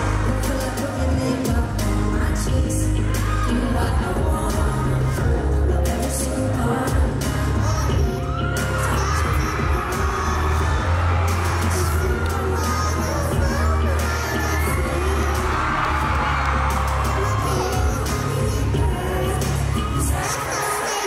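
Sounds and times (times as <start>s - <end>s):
heavy bass: 0.0s - 20.4s
crowd cheering: 0.0s - 21.0s
high voices shouting and singing: 0.0s - 21.0s
live pop band playing: 0.0s - 21.0s.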